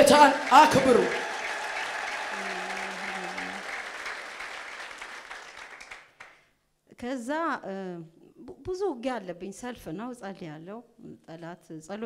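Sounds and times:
congregation applauding: 0.0 - 6.4.

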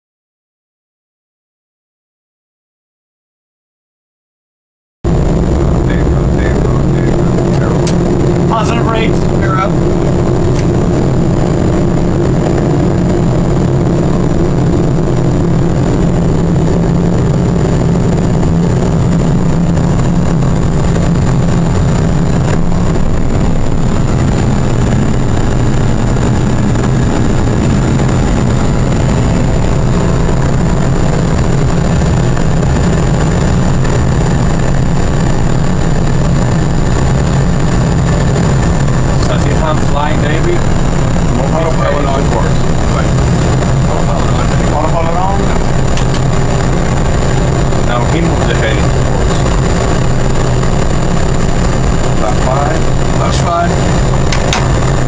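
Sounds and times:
high engine whine: 5.0 - 55.0
jet engine low rumble: 5.1 - 55.0.

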